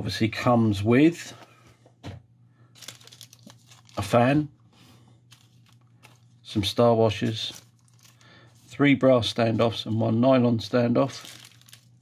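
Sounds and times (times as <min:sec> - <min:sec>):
plastic bag crinkling: 0:02.7 - 0:04.4, 0:05.3 - 0:08.7, 0:10.6 - 0:12.0.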